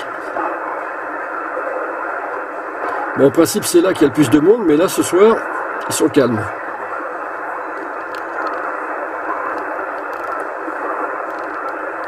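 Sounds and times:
radio receiver hiss: 0.0 - 12.0.

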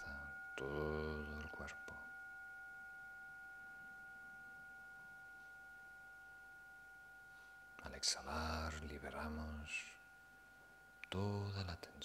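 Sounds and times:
faint ringing tone: 0.0 - 12.0.

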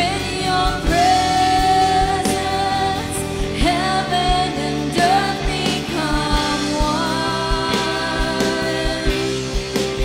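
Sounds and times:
band playing slow song: 0.0 - 10.0
woman singing: 0.0 - 10.0.

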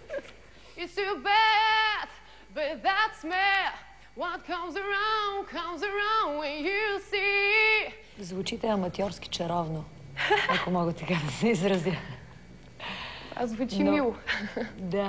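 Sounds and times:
woman singing unaccompanied: 0.8 - 9.9.

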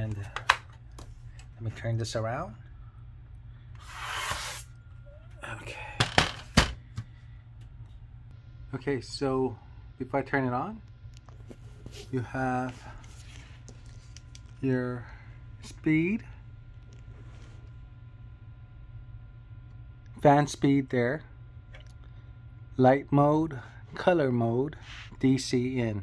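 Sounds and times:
faint low hum: 0.0 - 26.0.

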